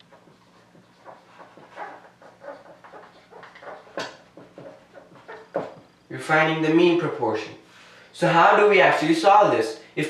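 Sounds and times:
marker squeaking on whiteboard: 0.0s - 6.0s.

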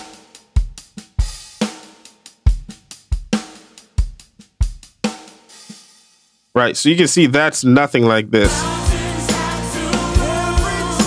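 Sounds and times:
drum kit steady beat: 0.0s - 6.5s, 8.4s - 11.0s.

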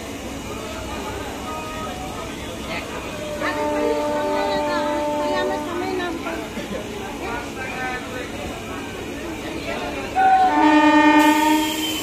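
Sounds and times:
train air horn blast: 3.3s - 6.0s, 10.2s - 12.0s.

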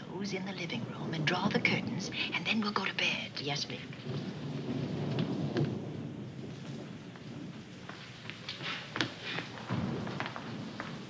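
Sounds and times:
low rumble of thunder: 0.0s - 11.0s
rain: 0.0s - 11.0s
wind: 0.0s - 11.0s.

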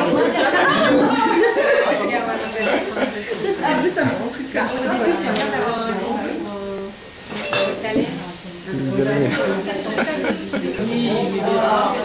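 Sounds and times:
background voices chattering: 0.0s - 12.0s
paintbrushes clinking against glass jars: 7.3s - 7.8s.

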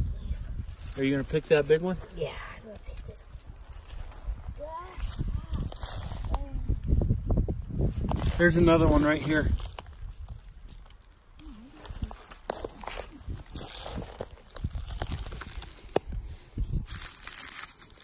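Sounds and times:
dry leaves rustling underfoot: 0.6s - 18.0s
twigs snapping: 9.2s - 18.0s.

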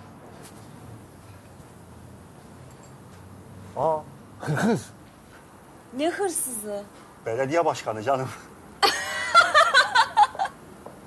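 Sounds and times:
restaurant room tone hum and hiss: 0.0s - 11.0s.

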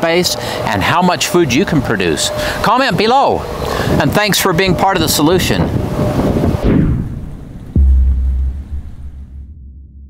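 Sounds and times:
low rumble: 5.8s - 10.0s
deep bass boom: 6.6s - 10.0s.

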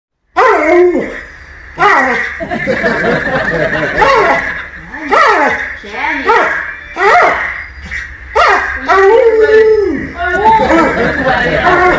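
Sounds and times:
husky howling: 0.4s - 2.3s, 8.3s - 11.9s.

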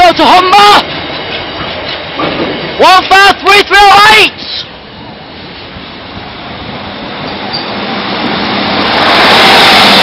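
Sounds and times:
diesel train approaching: 0.0s - 10.0s.

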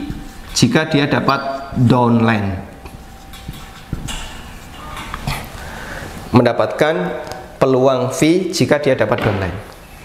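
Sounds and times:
marker scratching on whiteboard: 2.9s - 5.6s.

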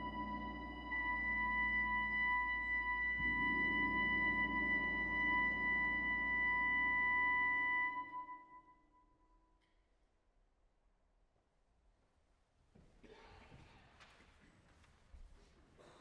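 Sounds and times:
sustained high note: 0.0s - 8.7s.

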